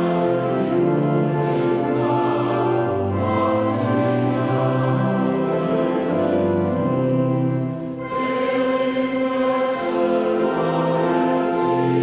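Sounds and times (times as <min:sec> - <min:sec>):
mixed choir singing chords: 0:00.0 - 0:12.0.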